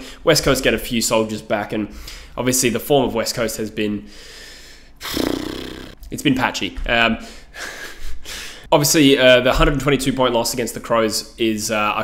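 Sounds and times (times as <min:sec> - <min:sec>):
man breathing out through nose: 0:01.9 - 0:02.4, 0:04.1 - 0:05.3, 0:07.2 - 0:08.6
man snorting laugh: 0:05.0 - 0:06.0.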